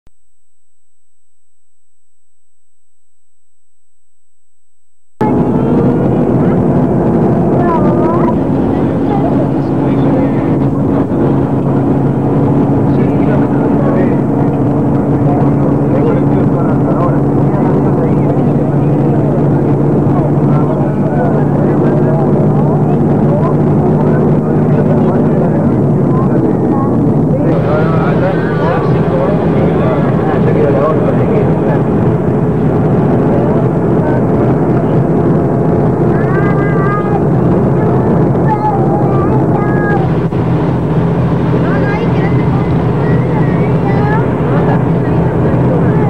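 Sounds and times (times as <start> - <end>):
bus engine droning: 5.2 - 46.0.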